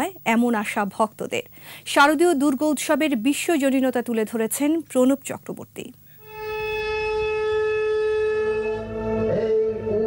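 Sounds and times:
lower notes and melody: 6.3s - 10.0s.

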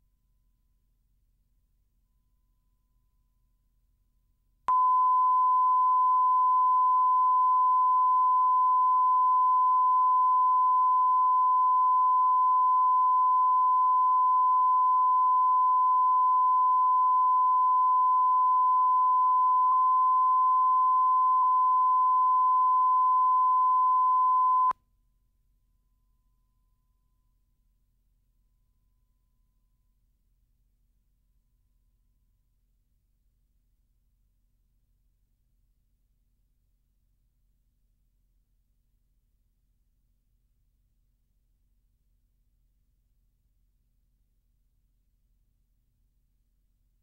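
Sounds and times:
steady pure test tone: 4.7s - 24.7s.

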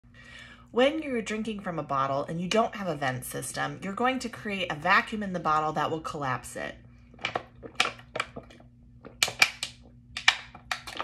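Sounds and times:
plastic bottle crackling: 7.1s - 11.0s.

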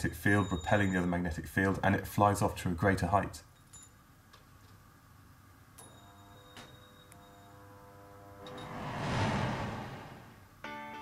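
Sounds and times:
light ringing tone: 3.6s - 4.1s, 5.8s - 8.8s
whoosh: 8.4s - 10.6s
music: 10.6s - 11.0s.

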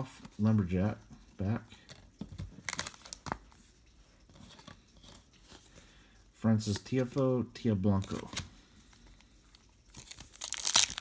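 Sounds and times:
trading cards flicking and rustling: 1.8s - 5.8s, 6.6s - 11.0s.

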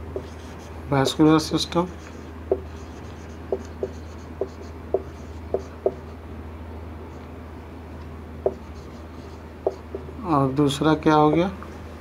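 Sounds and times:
marker pen writing on whiteboard: 0.0s - 1.3s, 1.9s - 6.2s, 8.4s - 10.2s, 11.2s - 11.6s
steady low hum: 0.0s - 12.0s.

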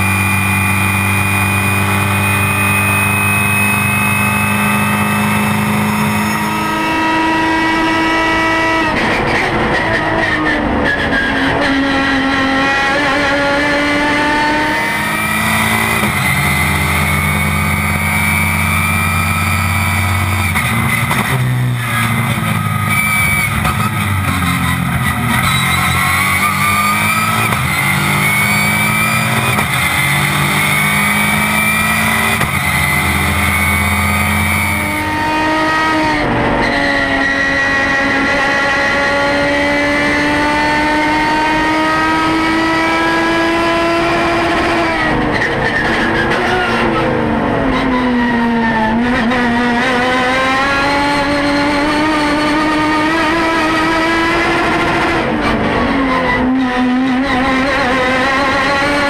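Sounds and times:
race car engine: 0.0s - 59.0s.

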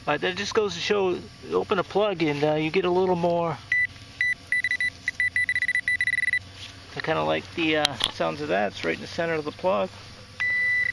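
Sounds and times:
pinpointer beeping high tone: 3.7s - 6.4s, 10.4s - 10.9s.

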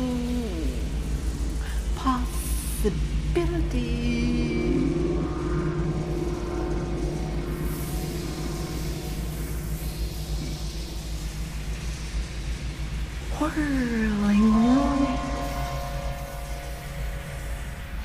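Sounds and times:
ambient drone music: 0.0s - 18.0s.

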